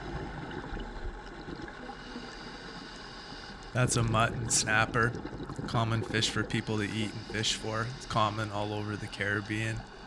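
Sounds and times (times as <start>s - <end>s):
underwater hiss and rumble: 0.0s - 10.0s.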